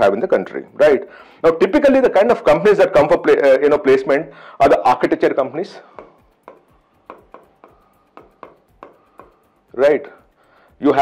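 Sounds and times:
marker pen scratching on board: 0:05.8 - 0:11.0.

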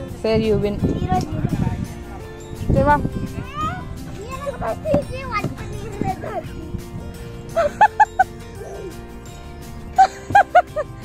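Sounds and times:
background music with held notes: 0:00.0 - 0:11.0
child calling: 0:03.4 - 0:06.7.

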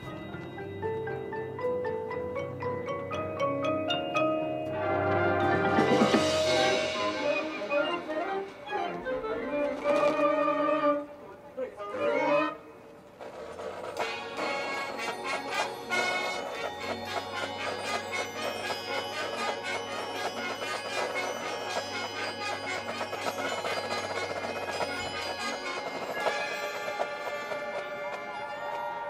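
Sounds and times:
marching band playing chords: 0:00.0 - 0:09.4, 0:13.2 - 0:28.4.

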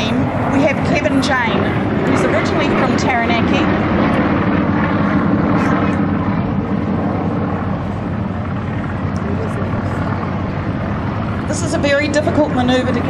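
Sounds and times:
radial engine planes droning overhead: 0:00.0 - 0:13.0.

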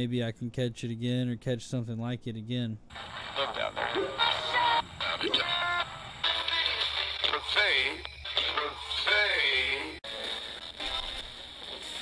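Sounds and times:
choppy radio music and voices: 0:02.6 - 0:12.0.

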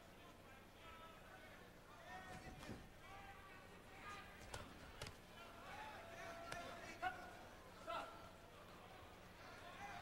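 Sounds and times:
arena crowd voices and shouts: 0:00.0 - 0:10.0.

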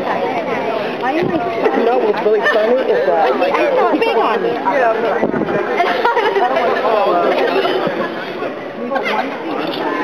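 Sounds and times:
people chattering: 0:00.0 - 0:10.0
laughter: 0:05.8 - 0:08.0.

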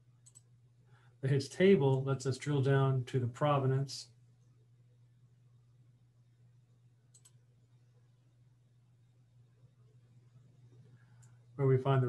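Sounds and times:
low steady hum: 0:00.0 - 0:12.0
computer mouse click: 0:00.2 - 0:00.5, 0:07.1 - 0:07.4.

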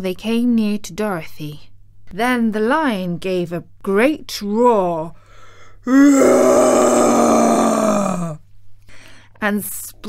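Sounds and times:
person imitating lion roar: 0:05.8 - 0:08.4.

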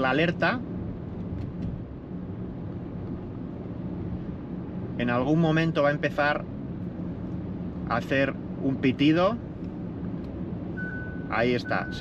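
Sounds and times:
road and wind noise in car: 0:00.0 - 0:12.0.

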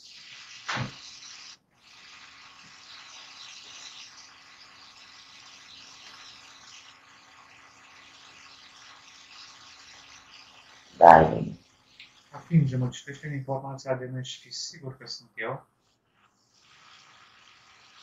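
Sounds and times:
faint steady hiss: 0:00.0 - 0:18.0
short vocal sound: 0:11.0 - 0:11.6.

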